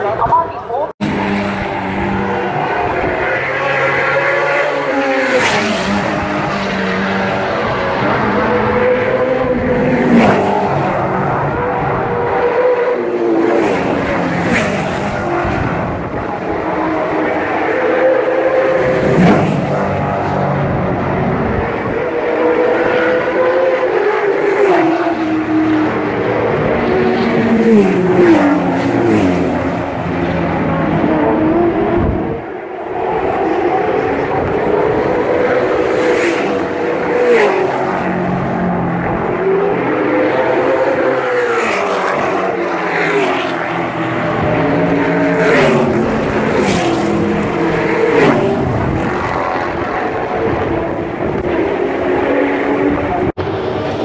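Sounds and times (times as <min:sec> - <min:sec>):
racing car engines: 0:00.0 - 0:54.0.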